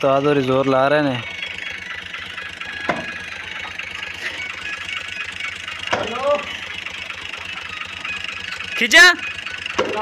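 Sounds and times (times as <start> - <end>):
engine idling: 0.0 - 10.0.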